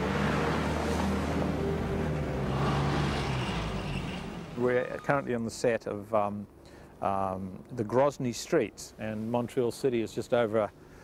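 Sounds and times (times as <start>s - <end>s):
background music notes: 0.0s - 4.9s.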